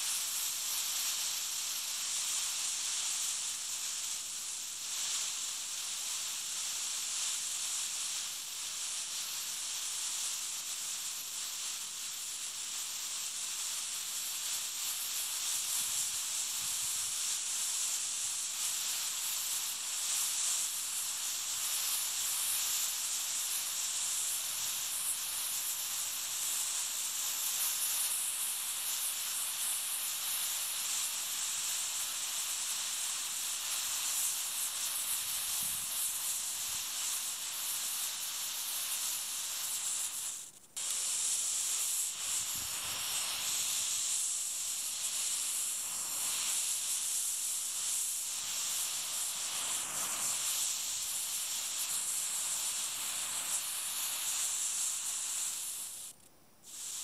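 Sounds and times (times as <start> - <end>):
smoke composition burning with hiss: 0.0 - 57.0.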